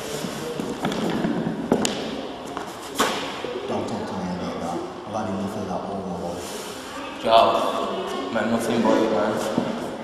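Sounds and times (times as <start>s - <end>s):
steady noisy background: 0.0s - 10.0s.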